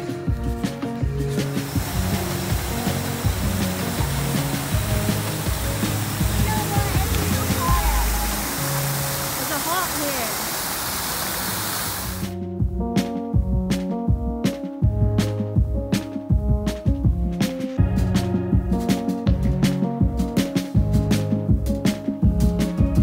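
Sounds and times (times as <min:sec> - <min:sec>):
background music: 0:00.0 - 0:10.3, 0:12.2 - 0:23.0
fountain water splashing into basin: 0:01.4 - 0:12.3.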